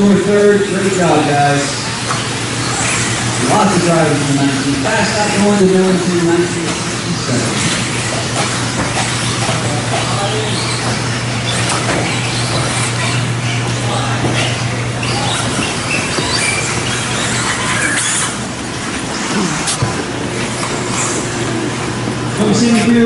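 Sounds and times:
rc car motor whine: 0.0 - 23.0
steady low hum: 0.0 - 23.0.

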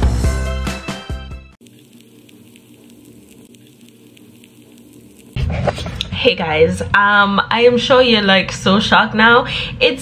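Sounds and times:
faint crackling hiss: 1.6 - 5.4.

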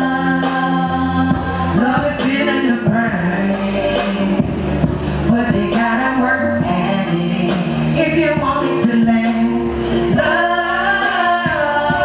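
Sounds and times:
live band with singing: 0.0 - 12.0.

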